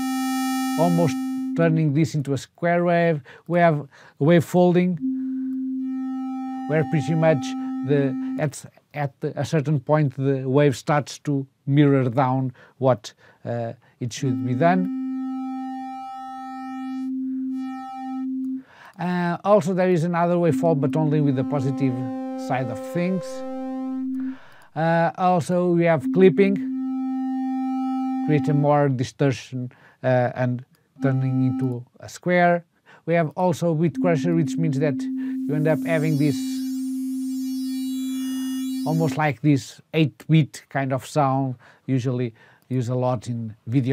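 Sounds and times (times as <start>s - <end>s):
synthesizer held note: 0.0s - 1.7s, 5.0s - 8.4s, 14.1s - 18.6s, 20.2s - 24.7s, 25.8s - 28.8s, 31.0s - 31.8s, 33.9s - 39.2s.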